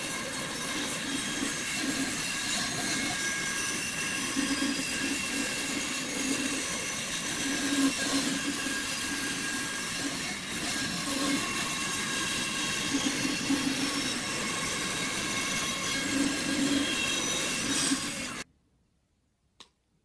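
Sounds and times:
bandsaw cutting wood: 0:00.0 - 0:18.4.

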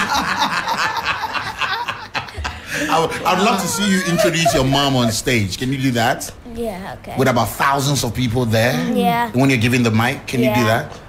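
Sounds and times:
people laughing softly: 0:00.0 - 0:05.4
person speaking: 0:02.7 - 0:07.6, 0:08.4 - 0:09.5, 0:10.2 - 0:11.0.

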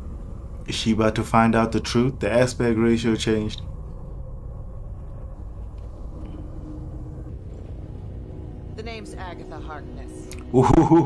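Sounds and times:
low rumbling drone: 0:00.0 - 0:11.0.

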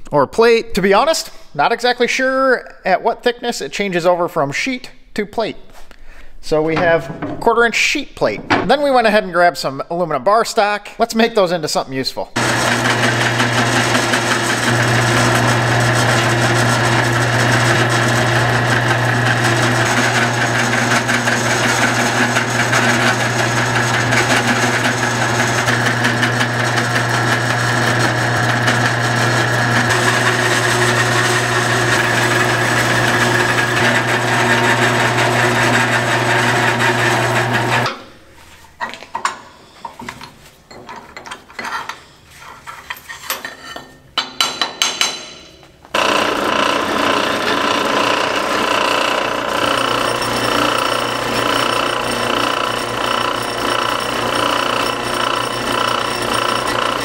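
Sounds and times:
milling machine cutting metal: 0:12.4 - 0:37.9, 0:46.0 - 0:57.0.

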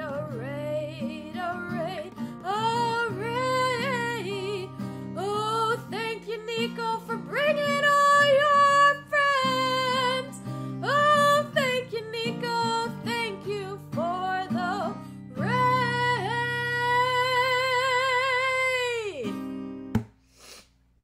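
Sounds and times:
woman singing with vibrato: 0:00.0 - 0:19.4
strummed acoustic guitar: 0:00.0 - 0:20.1.

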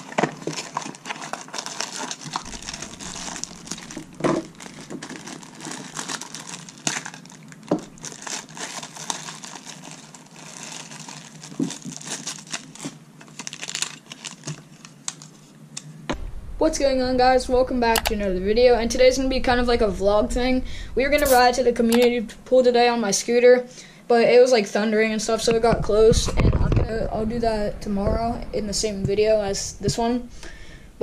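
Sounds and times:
plastic bag crinkling: 0:00.0 - 0:15.5.

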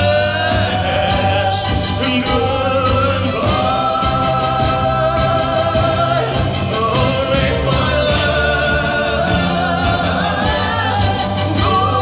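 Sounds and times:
drum and cymbal beats: 0:00.0 - 0:12.0
live rock band: 0:00.0 - 0:12.0.

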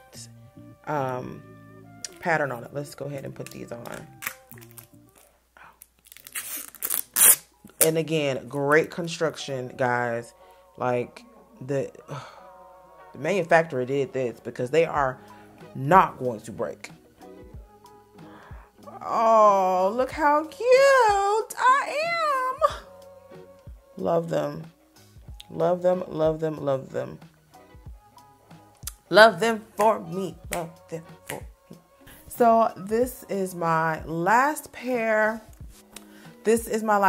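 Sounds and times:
soft background music: 0:00.0 - 0:37.0
eyeglasses handling rustle: 0:03.4 - 0:07.9
woman's sing-song exclamation: 0:20.7 - 0:22.9.

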